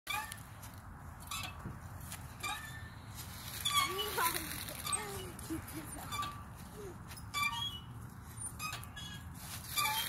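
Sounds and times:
swing squeaking: 0.1s - 10.0s.

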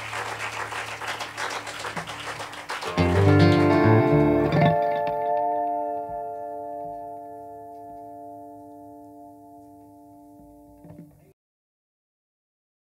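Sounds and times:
guitar chord ringing: 2.8s - 11.3s.

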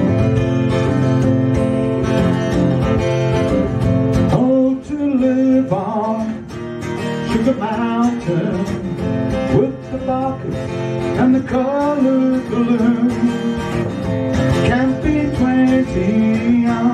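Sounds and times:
acoustic guitar strumming: 0.0s - 16.9s
man singing: 4.2s - 13.8s, 14.4s - 16.9s.

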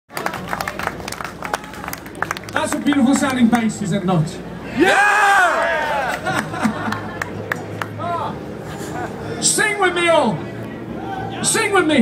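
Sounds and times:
audience clapping: 0.1s - 3.8s, 6.0s - 8.0s.

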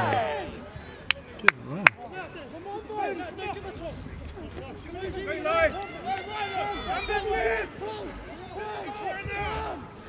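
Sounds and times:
voices shouting and calling: 0.0s - 10.0s.

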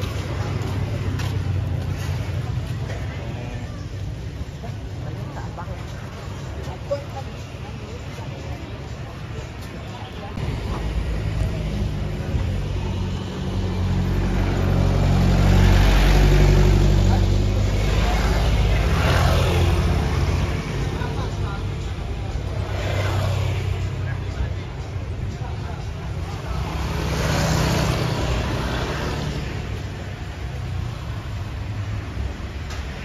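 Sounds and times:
traffic passing close by: 0.0s - 33.0s.

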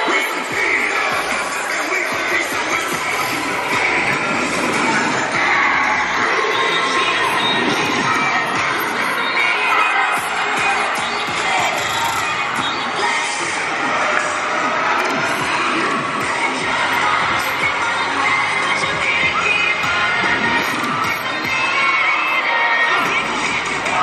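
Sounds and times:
crowd shouting and cheering: 0.0s - 24.0s
music playing: 0.0s - 24.0s.

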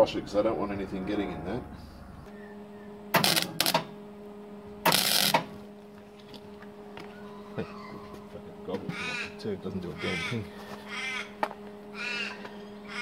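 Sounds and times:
steady hum: 0.0s - 13.0s
arc welder crackling: 3.1s - 4.0s, 4.7s - 6.9s.

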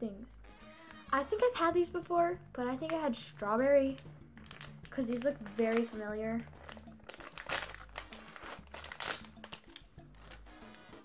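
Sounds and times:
plastic packaging crinkling: 4.4s - 10.8s.

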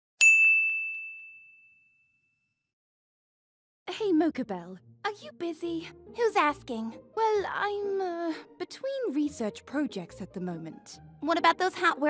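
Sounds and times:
bright bell ding: 0.2s - 2.5s.

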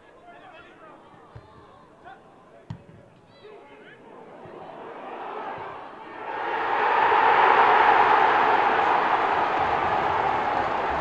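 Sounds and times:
players shouting: 4.2s - 11.0s.

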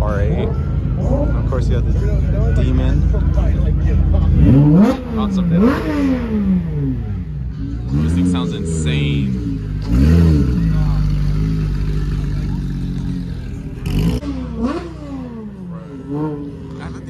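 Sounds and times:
car engine revving: 0.0s - 17.0s.

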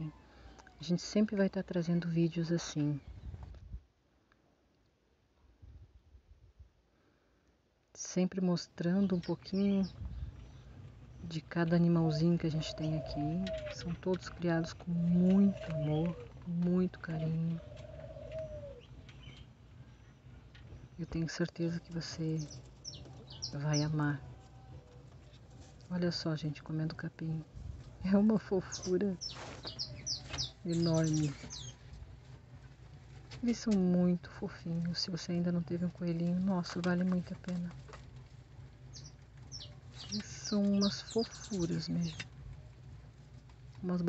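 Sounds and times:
low background hum: 0.0s - 44.0s
low wavering bird call: 15.0s - 16.3s
faint high bird chirp: 22.3s - 24.8s, 28.7s - 31.8s, 38.9s - 42.3s
faint bird chirps: 28.7s - 31.8s.

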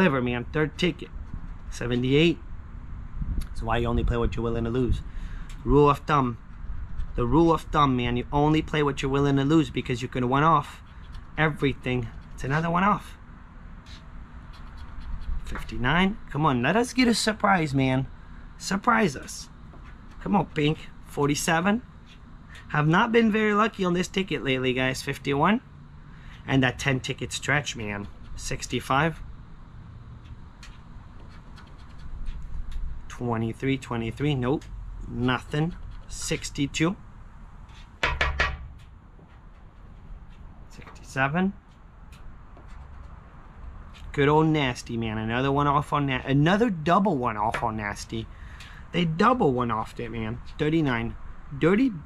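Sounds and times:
scratcher rubbing lottery ticket: 13.8s - 16.2s, 27.0s - 29.2s, 30.2s - 33.1s
coin scraping lottery ticket: 30.7s - 32.9s.

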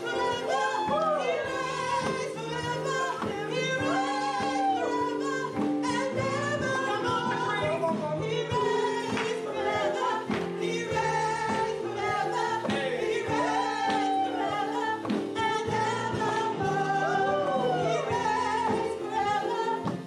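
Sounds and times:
gospel singing by several voices: 0.0s - 20.0s
instrumental backing: 0.0s - 20.0s.

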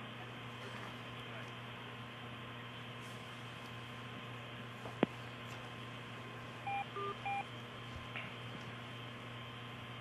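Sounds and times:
phone line hum and hiss: 0.0s - 10.0s
two-tone electronic beeps: 6.7s - 7.4s.

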